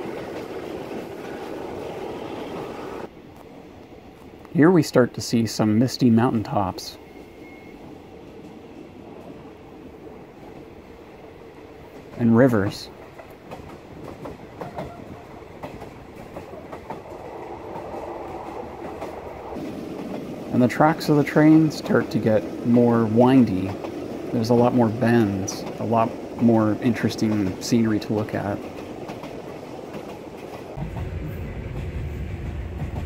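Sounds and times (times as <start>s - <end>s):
train wheels rumbling on track: 0.0s - 33.0s.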